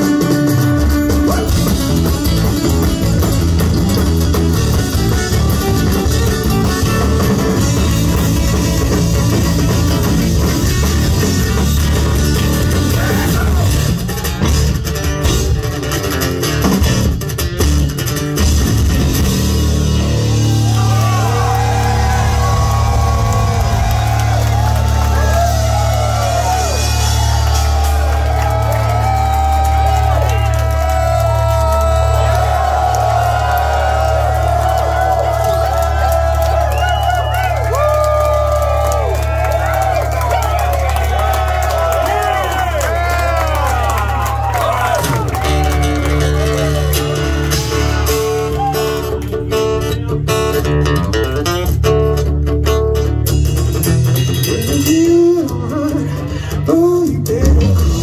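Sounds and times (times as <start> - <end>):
live rock band playing: 0.0 - 58.0
crowd whooping and yelling: 4.6 - 14.8, 19.7 - 49.2.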